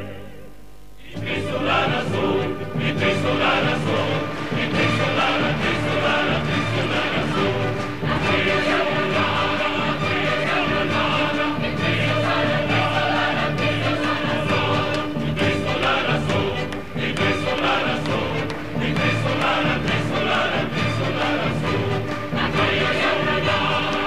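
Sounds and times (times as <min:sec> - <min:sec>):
choir singing with accompaniment: 0:00.0 - 0:24.0.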